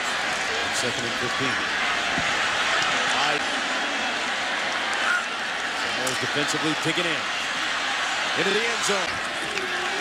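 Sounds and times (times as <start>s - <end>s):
stadium crowd voices: 0.0s - 10.0s.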